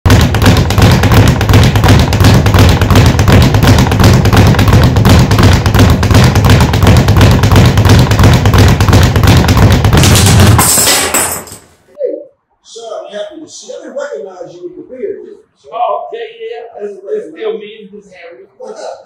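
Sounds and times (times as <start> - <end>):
speed bag being punched: 0.1 - 11.5.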